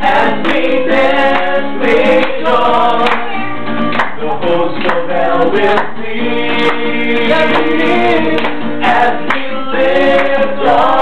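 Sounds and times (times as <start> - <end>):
acoustic guitar strumming: 0.0 - 11.0
group singing in harmony: 0.0 - 11.0.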